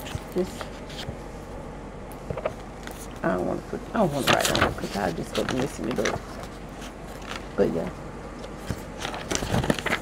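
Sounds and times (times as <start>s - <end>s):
paper sheets rustling: 0.0s - 1.2s, 4.0s - 7.6s, 8.4s - 10.0s.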